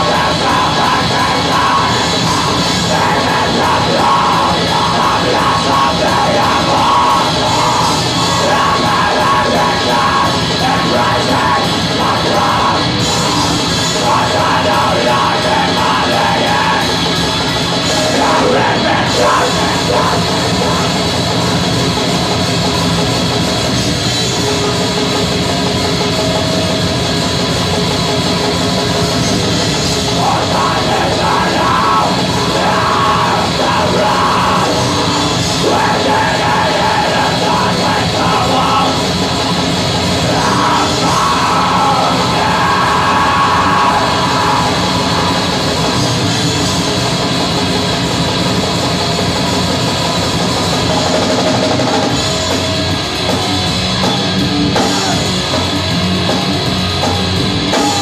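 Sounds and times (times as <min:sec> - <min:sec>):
screamed vocals: 0:00.0 - 0:17.2, 0:17.8 - 0:21.0, 0:30.2 - 0:46.9, 0:54.0 - 0:55.4, 0:57.6 - 0:58.0
distorted electric guitars: 0:00.0 - 0:58.0
drum kit: 0:00.0 - 0:58.0.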